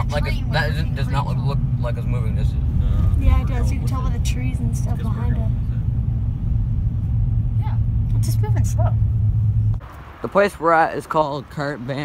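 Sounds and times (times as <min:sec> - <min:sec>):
car cabin road rumble: 0:00.0 - 0:12.0.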